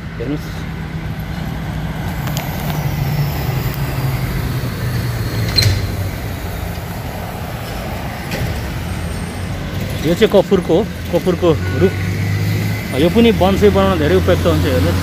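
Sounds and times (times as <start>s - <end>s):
heavy vehicle passing: 0.0s - 15.0s.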